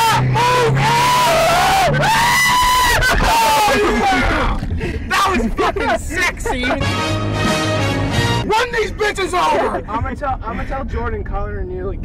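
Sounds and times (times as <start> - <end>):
passengers shrieking and whooping: 0.0 - 6.8.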